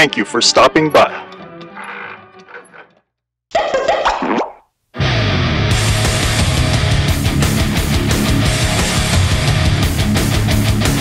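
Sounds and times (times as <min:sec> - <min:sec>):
cartoon pop sound effect: 0:03.5 - 0:04.6
loud rock music: 0:05.0 - 0:11.0.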